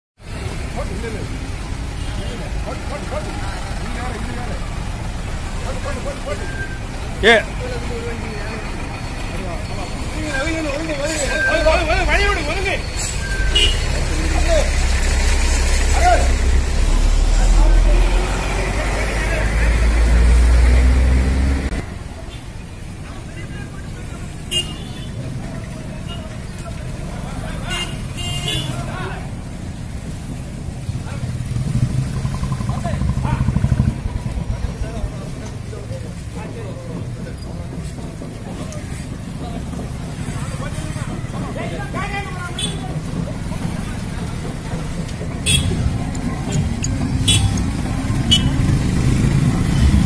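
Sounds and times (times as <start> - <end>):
vehicle engines passing: 0.2 - 50.0
people's voices: 0.3 - 50.0
horn toots: 13.2 - 14.2, 45.4 - 45.9, 46.5 - 48.8.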